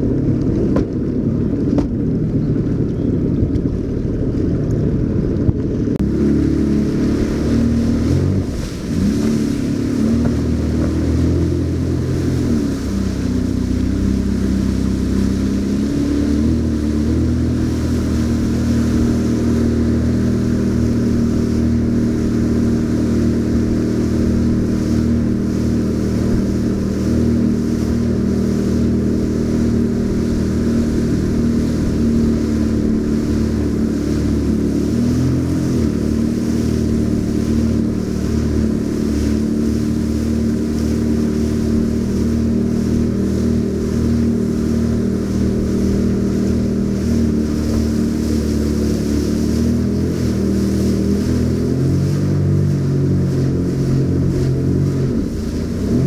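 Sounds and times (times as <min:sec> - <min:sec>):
jet ski engine droning: 0:00.0 - 0:56.0
rushing water: 0:00.0 - 0:56.0.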